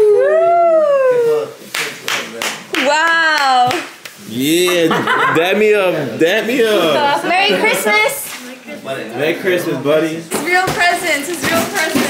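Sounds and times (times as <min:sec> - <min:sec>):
sharp clap: 0:01.6 - 0:04.8.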